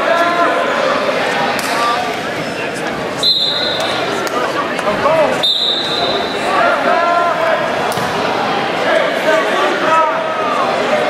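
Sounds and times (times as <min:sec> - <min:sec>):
spectators and coaches shouting: 0:03.1 - 0:11.0
referee's whistle blasts: 0:03.2 - 0:04.0, 0:05.4 - 0:06.5.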